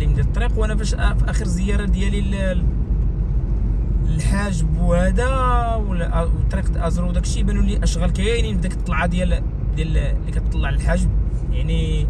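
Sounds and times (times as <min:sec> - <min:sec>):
man talking: 0:00.0 - 0:02.7, 0:04.0 - 0:12.0
car driving rumble: 0:00.0 - 0:12.0.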